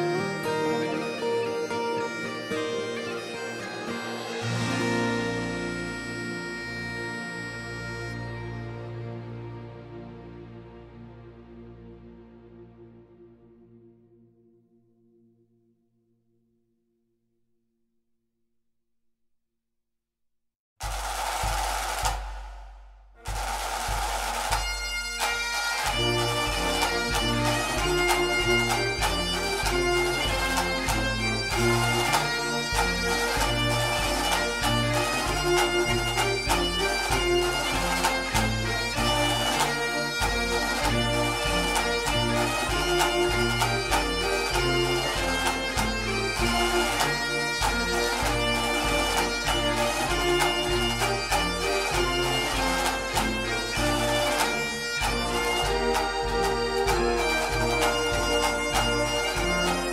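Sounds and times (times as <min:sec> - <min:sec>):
bagpipe music: 0:00.0 - 0:11.6, 0:23.2 - 0:59.9
steady regular beat: 0:20.8 - 0:59.9.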